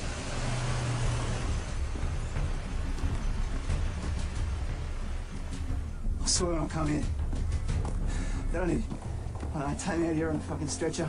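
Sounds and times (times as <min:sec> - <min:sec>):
truck engine rumbling: 0:00.0 - 0:11.0.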